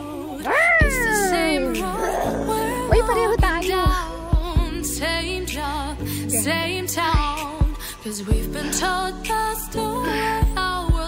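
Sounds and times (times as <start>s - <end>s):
pop music: 0.0s - 11.0s
woman's drawn-out vocal call: 0.4s - 3.7s.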